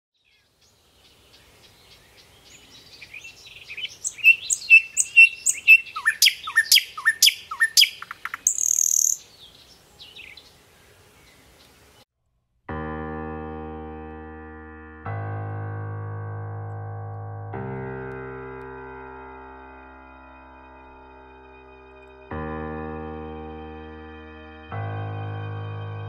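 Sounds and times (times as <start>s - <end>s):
sharp bird chirps: 0.2s - 10.5s
songbirds singing: 0.2s - 12.0s.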